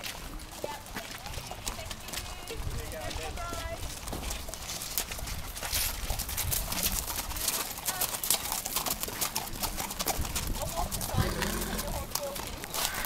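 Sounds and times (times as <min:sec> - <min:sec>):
horse hooves clopping on mud: 0:00.0 - 0:13.0.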